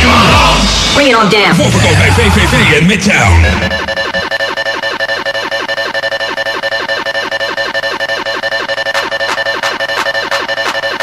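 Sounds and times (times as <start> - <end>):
fast repeating synth figure: 1.6 - 11.0
steady high tone: 1.6 - 11.0.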